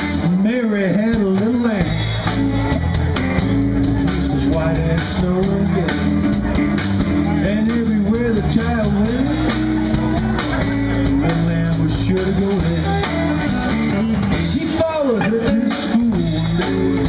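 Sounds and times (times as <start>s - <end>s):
bass: 0.0s - 17.0s
drums: 0.0s - 17.0s
electric guitar with pitch bends: 0.0s - 17.0s.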